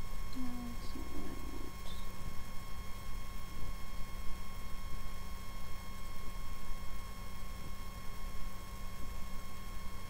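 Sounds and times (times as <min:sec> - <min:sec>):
electrical hum and hiss: 0:00.0 - 0:10.0.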